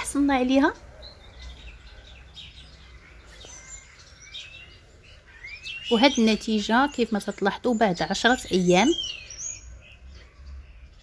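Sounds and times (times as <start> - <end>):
faint bird chirps: 0.0 - 11.0
low steady background noise: 0.0 - 11.0.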